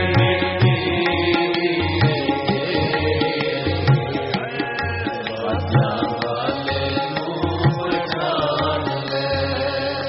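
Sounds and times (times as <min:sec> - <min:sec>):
harmonium drone: 0:00.0 - 0:10.0
tabla strokes: 0:00.0 - 0:10.0.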